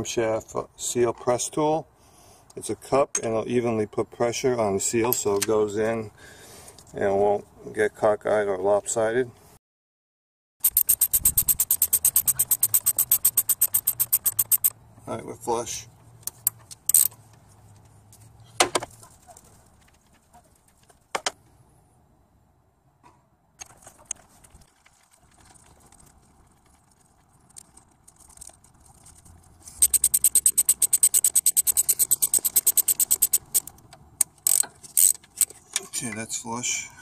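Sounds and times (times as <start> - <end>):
ratcheting wrench clicking: 10.6 - 14.7, 16.3 - 17.2, 29.8 - 35.5
metal clinks: 29.8 - 33.7.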